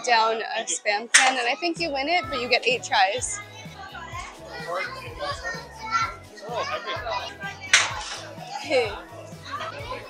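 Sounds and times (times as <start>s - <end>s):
background music: 0.0s - 10.0s
children chattering: 0.0s - 10.0s.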